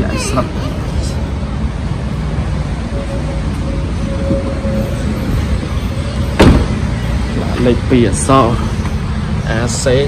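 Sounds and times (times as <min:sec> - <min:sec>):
van tailgate slamming shut: 0:06.4 - 0:06.8.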